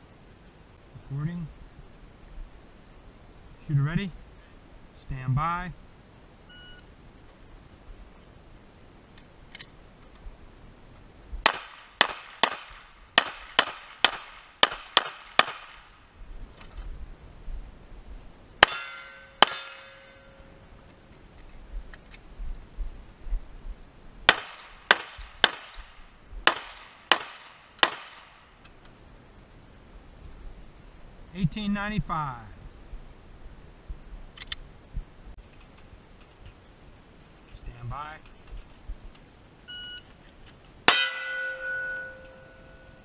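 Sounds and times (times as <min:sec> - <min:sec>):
pistol shots: 0:11.4 - 0:16.0, 0:24.3 - 0:28.4.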